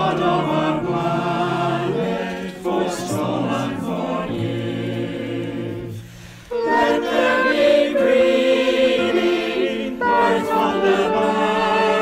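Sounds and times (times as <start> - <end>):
choir singing a hymn: 0.0 - 12.0
keyboard accompaniment: 0.0 - 12.0.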